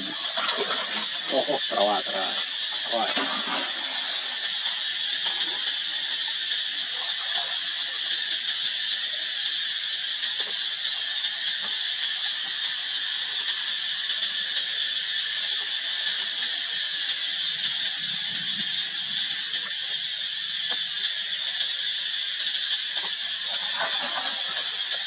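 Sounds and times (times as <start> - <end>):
high-pitched hissing drone: 0.0 - 25.0.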